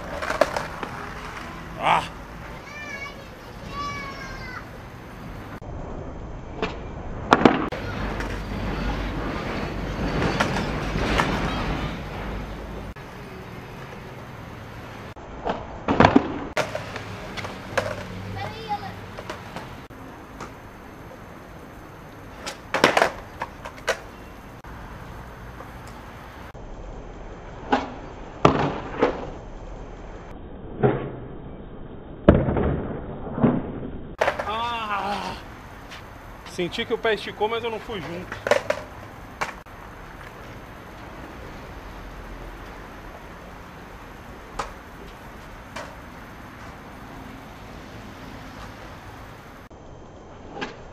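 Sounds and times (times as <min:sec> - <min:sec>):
skateboard clacking on ground: 0:00.0 - 0:01.6, 0:07.3 - 0:08.9, 0:09.9 - 0:11.8, 0:15.4 - 0:20.7, 0:22.3 - 0:24.2, 0:34.2 - 0:34.7, 0:37.9 - 0:40.6, 0:44.4 - 0:46.8
skateboard wheels rolling on concrete: 0:00.0 - 0:50.9.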